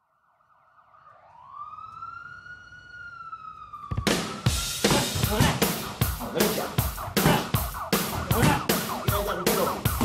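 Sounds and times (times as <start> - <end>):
siren-like wailing tone: 0.0 - 10.0.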